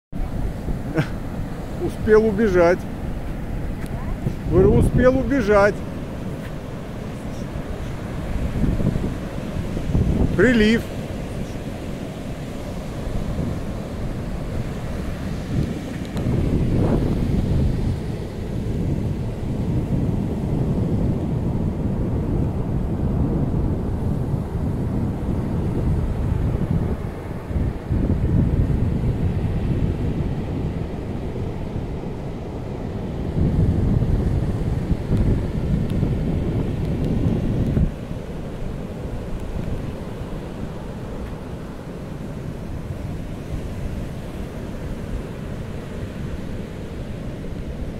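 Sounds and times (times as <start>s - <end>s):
surf breaking on beach: 0.1s - 47.9s
wind buffeting microphone: 0.1s - 47.9s.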